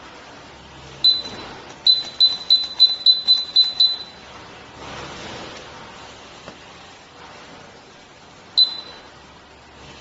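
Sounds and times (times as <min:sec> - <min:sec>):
high-pitched electronic beeps: 0:01.0 - 0:04.2, 0:08.6 - 0:09.0.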